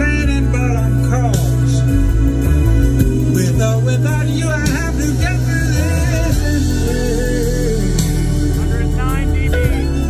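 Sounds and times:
song with heavy deep bass: 0.0 - 10.0.

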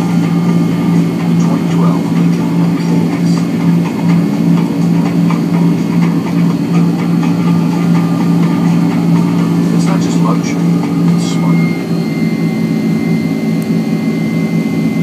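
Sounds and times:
jet engines droning in cabin: 0.0 - 15.0.

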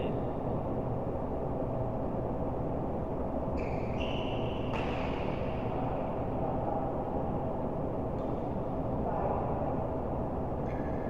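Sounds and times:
low rumble with hum: 0.0 - 11.0.

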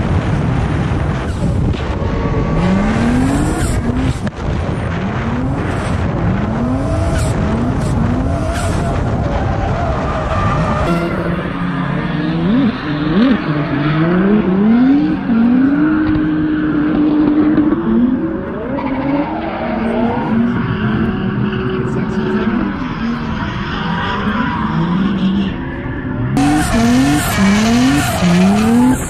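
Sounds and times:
car engines revving: 0.0 - 29.0
tyres skidding and squealing: 0.1 - 29.0.

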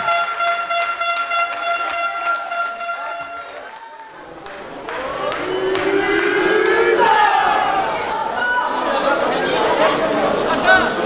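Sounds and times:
steady horn blast: 0.0 - 3.6
people clapping: 0.0 - 8.6.

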